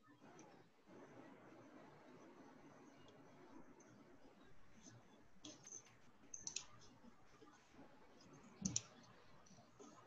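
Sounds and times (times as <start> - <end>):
faint clicks: 5.4 - 7.0, 8.6 - 10.0.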